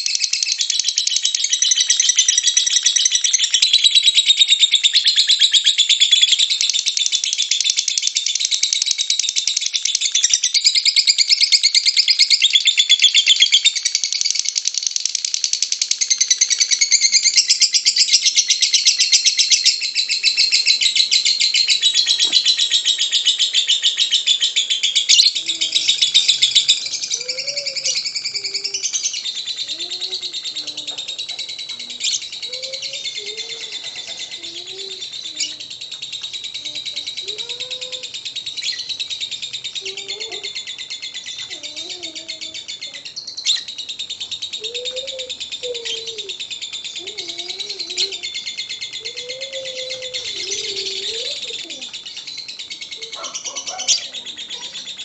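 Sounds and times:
lovebird chattering trill: 0.0s - 55.0s
faint gliding bird calls: 17.2s - 55.0s.

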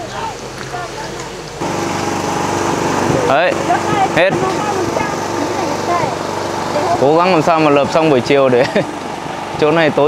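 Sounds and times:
small engine running: 1.6s - 10.0s.

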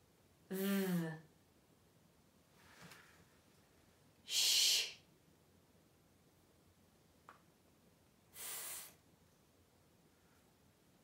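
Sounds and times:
woman making breathy hiss: 4.3s - 5.0s, 8.3s - 9.0s.

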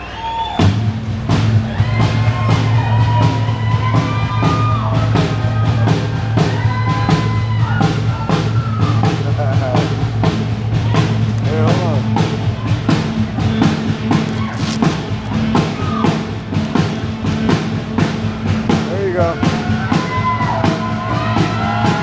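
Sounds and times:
rock band playing: 0.4s - 22.0s
drum-kit hits: 0.6s - 22.0s.

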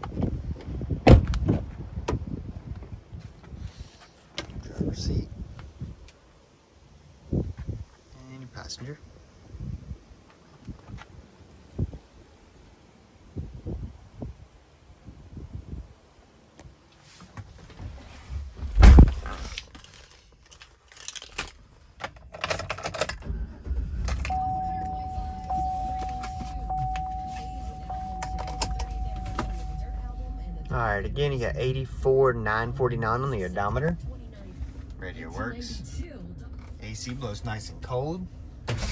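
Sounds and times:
loud thump: 1.0s - 2.2s, 18.6s - 19.2s
truck engine starting and idling: 22.4s - 38.9s
warning chime: 24.3s - 31.1s.

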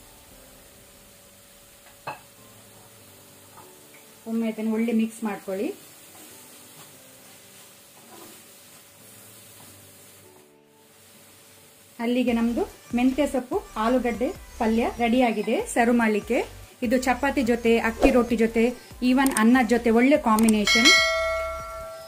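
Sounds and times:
faint sizzle: 0.0s - 22.0s
woman talking: 4.3s - 5.8s, 12.0s - 21.1s
spatula stirring in a pan: 6.0s - 9.7s.

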